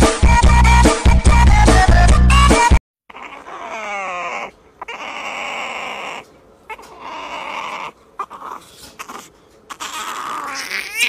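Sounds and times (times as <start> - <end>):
puppy whining and crying: 3.1 - 11.0.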